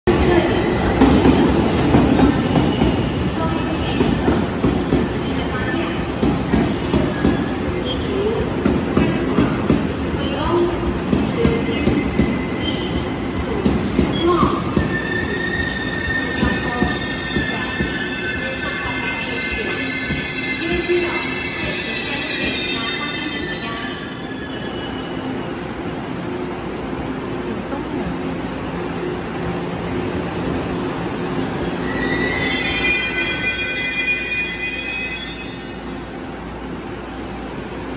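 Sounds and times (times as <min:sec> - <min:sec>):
train wheels rumbling and knocking: 0:00.1 - 0:22.9
train brakes squealing: 0:11.4 - 0:25.3, 0:31.4 - 0:36.0.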